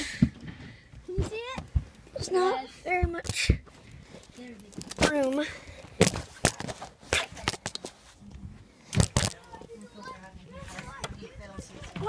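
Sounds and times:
children crawling bumps and rustles: 0.0s - 12.0s.

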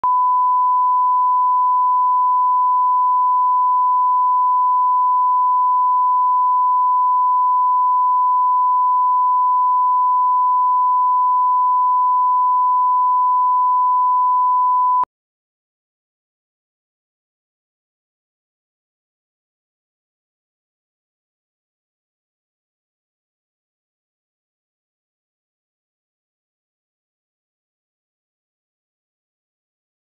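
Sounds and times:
steady test tone beep: 0.0s - 15.1s.

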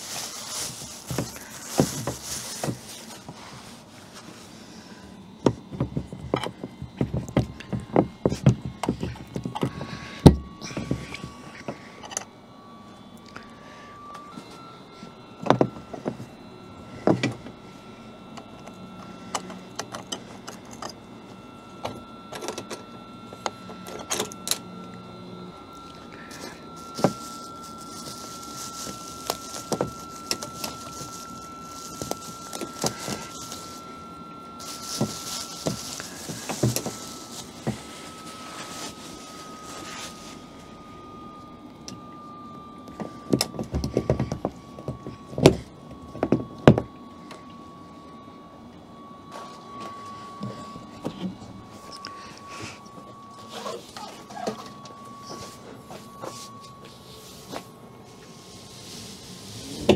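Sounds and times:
plastic bag rustling: 0.0s - 5.0s, 26.2s - 40.8s, 51.7s - 59.9s.

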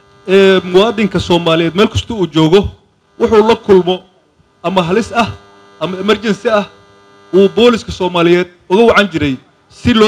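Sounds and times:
electrical hum: 0.0s - 10.0s
man speaking into a microphone: 0.2s - 10.0s.

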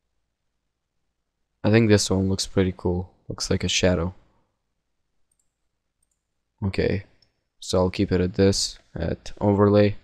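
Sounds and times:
faint computer mouse clicks: 5.3s - 6.3s.

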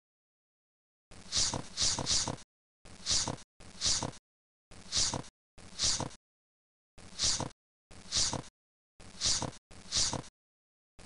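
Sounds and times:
quick hissing breaths: 1.3s - 2.4s, 3.0s - 4.2s, 4.9s - 6.2s, 7.1s - 8.5s, 9.1s - 10.3s.

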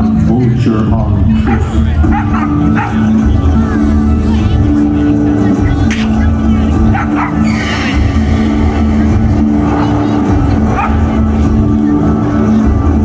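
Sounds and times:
low rumbling drone: 0.0s - 13.0s.

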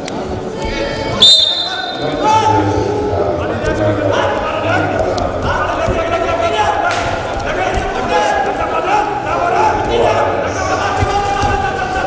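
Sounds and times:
referee's whistle blast: 1.2s - 2.0s.

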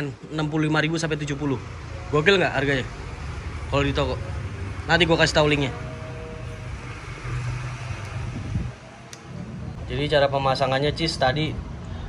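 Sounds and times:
low mechanical rumble: 5.6s - 10.2s.

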